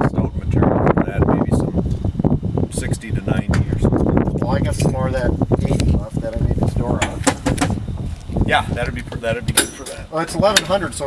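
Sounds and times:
low rumble: 0.0 - 9.6
people talking indistinctly: 0.0 - 11.0.

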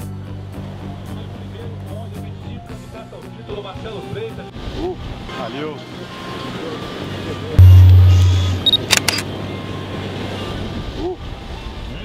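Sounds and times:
deep low hum: 7.6 - 8.9
short high beep: 7.6 - 9.0.

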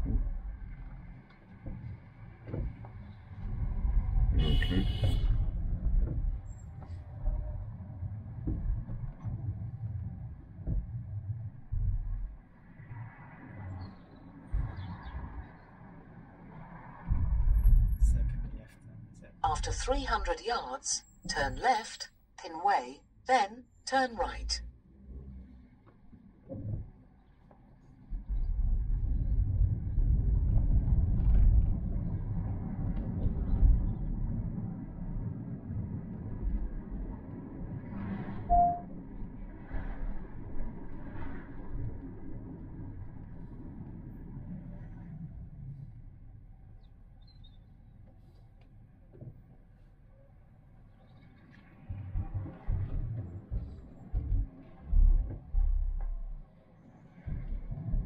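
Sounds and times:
car driving rumble inside cabin: 0.0 - 12.6, 17.1 - 20.3, 51.9 - 56.5
brief tone: 38.5 - 39.0.

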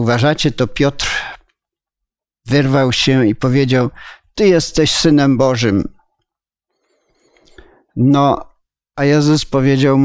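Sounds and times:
man speaking: 0.0 - 1.5, 2.4 - 6.0, 8.0 - 10.0
breathy in-breath: 7.0 - 7.9.

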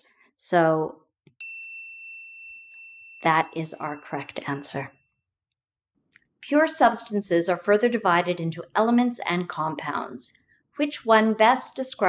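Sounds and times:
bell-like ding: 1.4 - 5.2.

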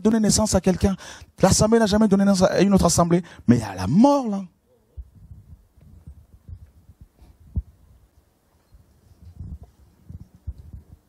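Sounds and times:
microphone handling thumps: 5.0 - 7.8, 9.2 - 11.0.

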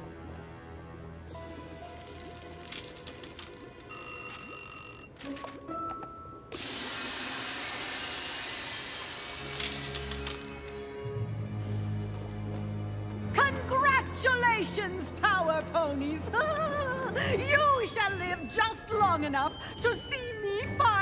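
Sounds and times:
bright ringing tone: 3.9 - 5.2
loud spraying hiss: 6.6 - 10.1
cartoon background music: 13.2 - 21.0.

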